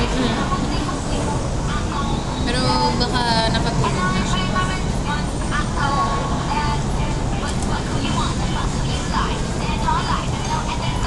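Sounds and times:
indistinct voices talking: 0:00.0 - 0:11.0
low background rumble: 0:00.0 - 0:11.0.

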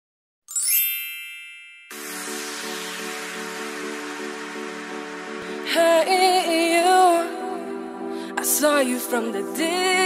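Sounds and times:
bright shimmering chime: 0:00.5 - 0:05.9
music track: 0:00.5 - 0:10.0.

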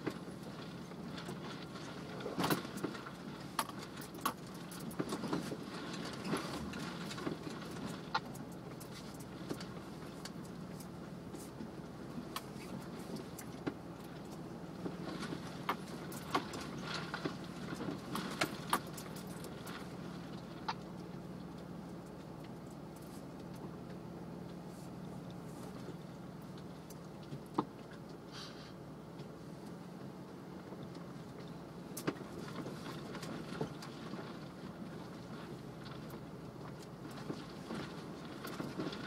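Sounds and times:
sharp rattles and knocks: 0:00.0 - 0:28.2
vehicle engine running low: 0:00.0 - 0:39.0.

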